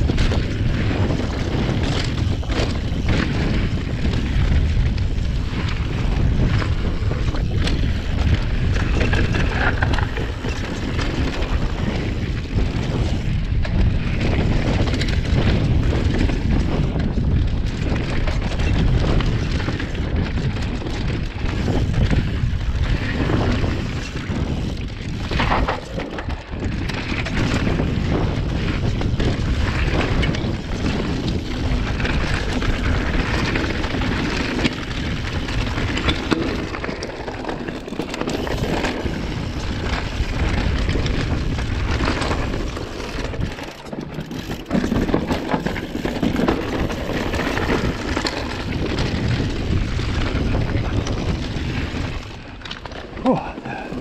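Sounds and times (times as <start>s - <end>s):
bike clattering and rattling: 0.0s - 54.0s
wind rushing over microphone: 0.0s - 54.0s.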